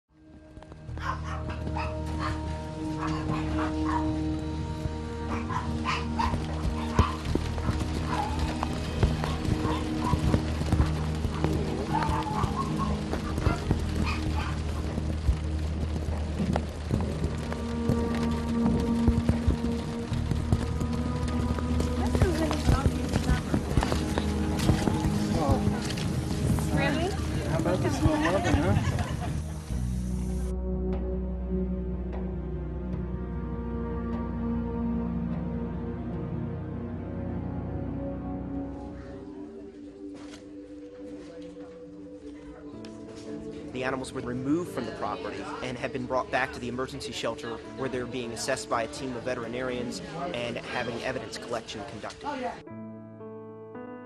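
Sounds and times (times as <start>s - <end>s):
background music: 0.1s - 54.0s
dogs barking and yelping: 0.9s - 4.3s, 5.2s - 15.1s.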